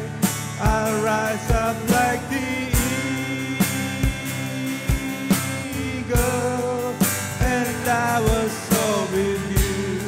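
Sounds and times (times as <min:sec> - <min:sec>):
acoustic guitar: 0:00.0 - 0:10.0
bass guitar: 0:00.0 - 0:10.0
people singing slow melody: 0:00.0 - 0:10.0
kick drum beats: 0:00.7 - 0:02.1.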